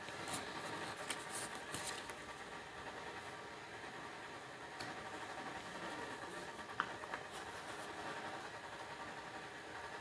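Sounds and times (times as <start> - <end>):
low hiss and hum: 0.0 - 10.0.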